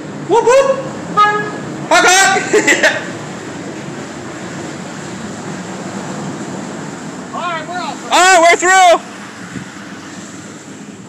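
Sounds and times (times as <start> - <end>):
motorboat engine running: 0.0 - 11.0
water rushing: 0.0 - 11.0
person calling out: 0.3 - 2.5.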